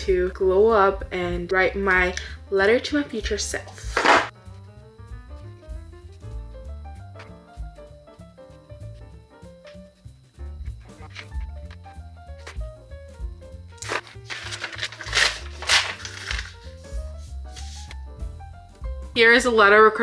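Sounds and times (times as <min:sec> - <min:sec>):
background music: 0:00.0 - 0:20.0
paper page ripping: 0:03.9 - 0:04.3, 0:13.8 - 0:16.8.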